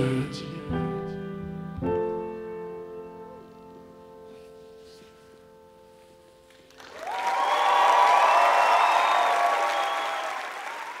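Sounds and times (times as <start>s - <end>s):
audience applause: 6.6s - 11.0s.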